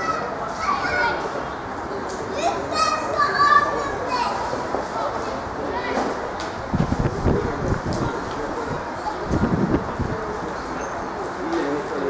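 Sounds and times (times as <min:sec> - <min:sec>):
boys shouting: 0:02.4 - 0:04.4.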